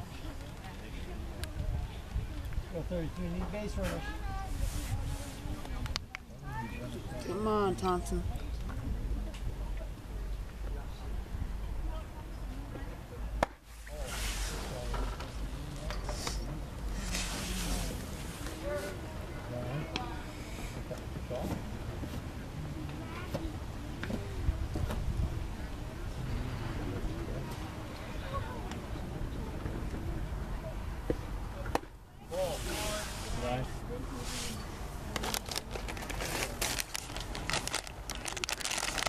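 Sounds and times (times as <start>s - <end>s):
spectators chatting: 0.0s - 39.0s.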